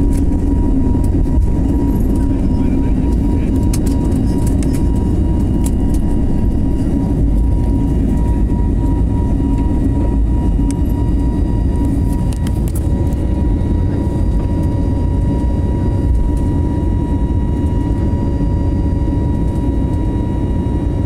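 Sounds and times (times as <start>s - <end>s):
jet engine rumble: 0.0s - 21.0s
jet engine whine: 0.0s - 21.0s.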